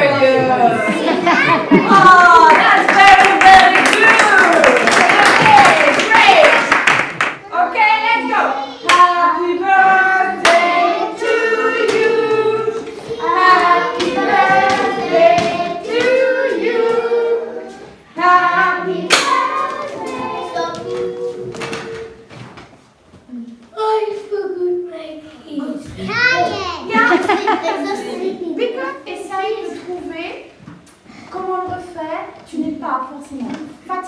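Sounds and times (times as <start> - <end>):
hand claps: 2.5 - 7.4
children singing: 8.7 - 22.3.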